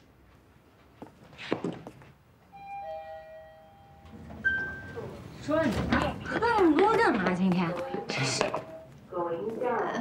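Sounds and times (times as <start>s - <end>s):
two-note doorbell chime: 2.5s - 5.0s.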